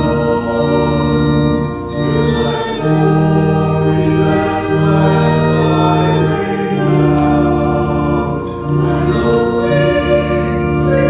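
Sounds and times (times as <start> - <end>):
organ: 0.0 - 11.0
voices singing a hymn: 0.0 - 11.0.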